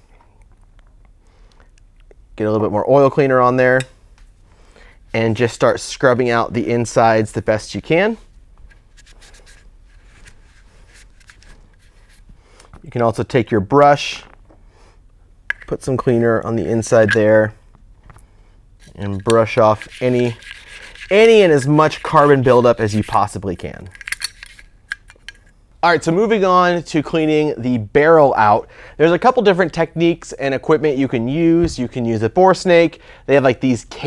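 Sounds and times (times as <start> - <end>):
brush scrubbing metal: 8.9 - 12.3, 18.8 - 24.7
cloth rubbing inside metal: 18.8 - 23.4.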